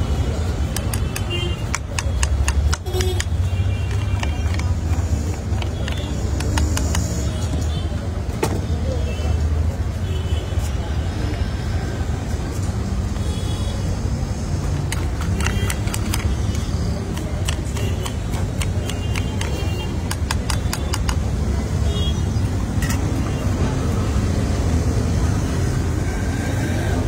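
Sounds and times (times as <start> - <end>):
street traffic rumble: 0.0 - 27.0.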